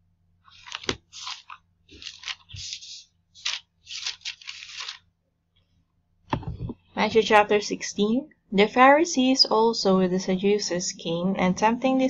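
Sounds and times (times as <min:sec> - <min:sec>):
thin pages turning and rustling: 0:00.5 - 0:05.1.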